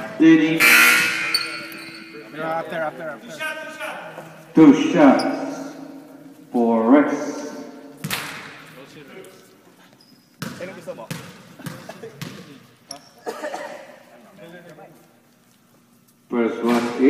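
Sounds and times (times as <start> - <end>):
basketball bouncing on hardwood floor: 10.4 - 12.5.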